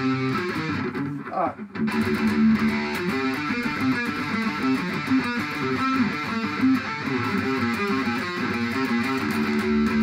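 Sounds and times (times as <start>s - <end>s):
electric guitar riff: 0.0s - 10.0s.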